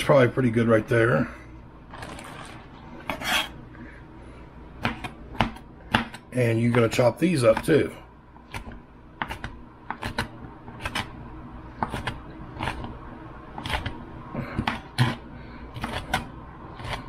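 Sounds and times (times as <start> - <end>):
knife chopping on cutting board: 4.8 - 7.8, 8.5 - 11.1, 11.8 - 12.9, 15.8 - 17.0.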